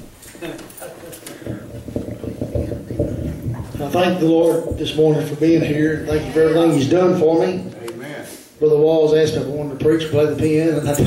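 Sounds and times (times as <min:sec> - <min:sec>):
muffled voices: 0:00.3 - 0:11.0.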